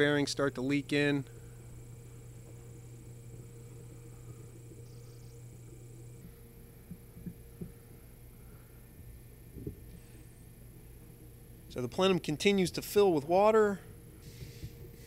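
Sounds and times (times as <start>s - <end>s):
low hum: 0.0s - 11.9s.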